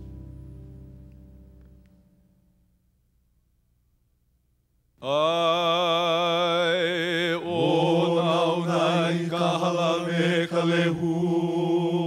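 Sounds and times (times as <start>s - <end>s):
man chanting with vibrato: 5.0s - 12.0s.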